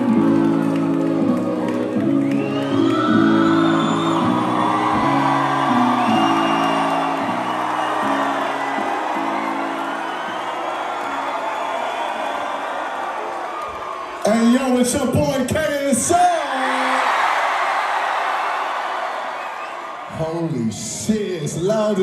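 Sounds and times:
crowd cheering and whooping: 0.0s - 14.6s, 16.2s - 20.3s
live concert music over a pa: 0.0s - 17.2s.

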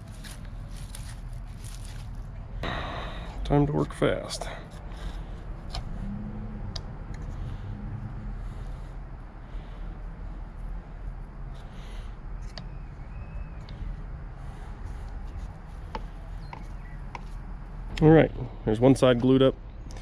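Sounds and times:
low background rumble: 0.0s - 20.0s.

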